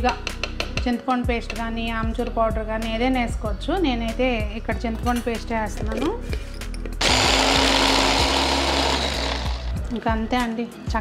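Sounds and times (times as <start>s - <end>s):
hand blender motor whir: 7.0s - 9.8s.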